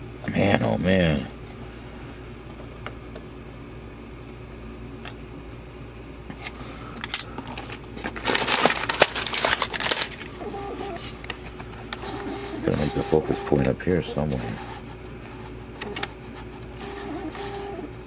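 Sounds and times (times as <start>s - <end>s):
needles rustling and clattering: 7.5s - 12.1s
rummaging in cardboard box: 7.5s - 16.6s.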